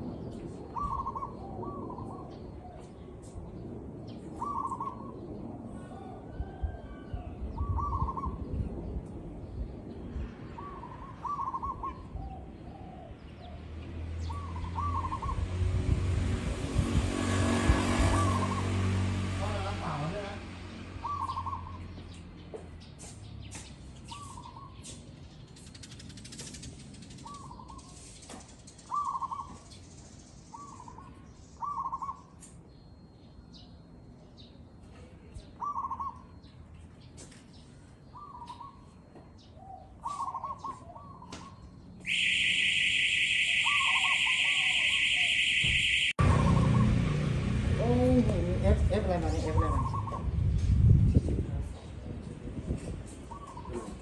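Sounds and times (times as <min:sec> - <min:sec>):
dove cooing: 0:00.8 - 0:02.4, 0:04.4 - 0:05.1, 0:07.6 - 0:08.4, 0:10.6 - 0:13.2, 0:35.6 - 0:36.3, 0:39.8 - 0:41.6, 0:43.6 - 0:45.4
high electronic tone: 0:42.1 - 0:47.2.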